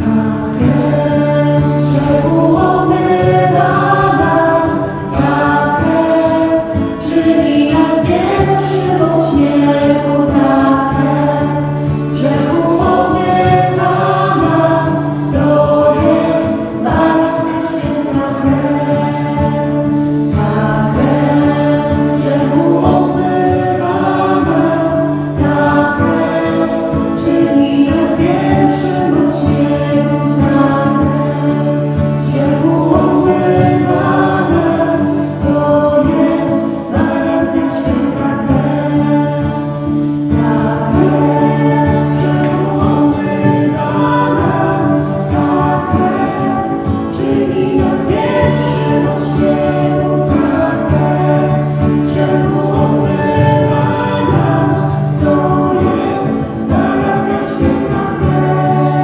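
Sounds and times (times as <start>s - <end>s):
choir singing religious song: 0.0s - 59.0s.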